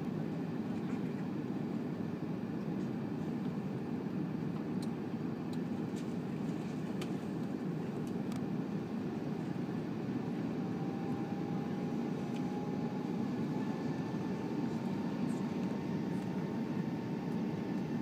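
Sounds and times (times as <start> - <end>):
airplane cabin rumble: 0.0 - 18.0.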